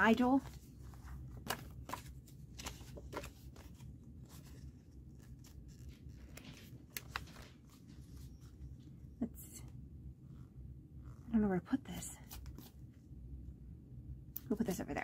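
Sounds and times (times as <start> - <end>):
low steady hum: 0.0 - 15.0
paper shuffling and sliding: 0.4 - 8.6.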